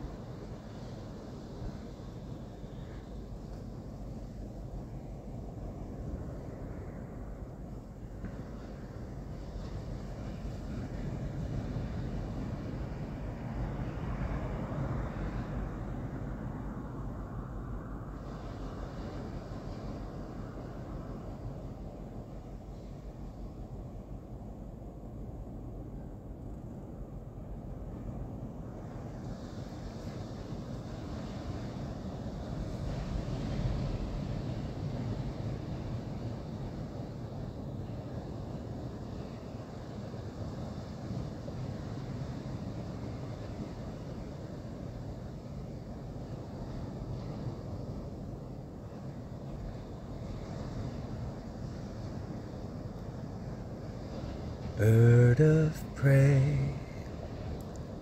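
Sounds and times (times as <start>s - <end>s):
high hiss: 54.8s - 57.1s.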